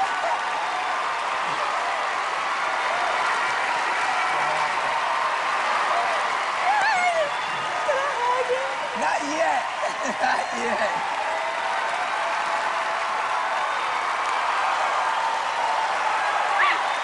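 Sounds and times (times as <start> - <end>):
audience applauding: 0.0 - 17.0
audience cheering and shouting: 0.0 - 17.0.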